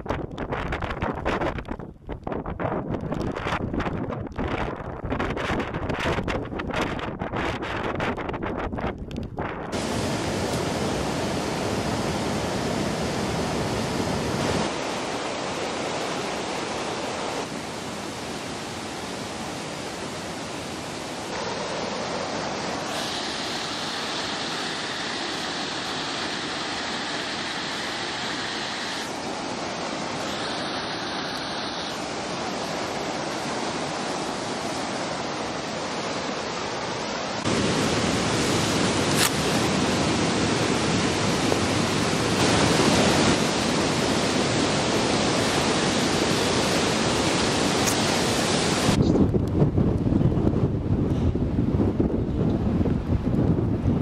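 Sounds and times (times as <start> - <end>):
wind on microphone: 0.0 - 34.5, 37.4 - 54.0
running water: 9.7 - 49.0.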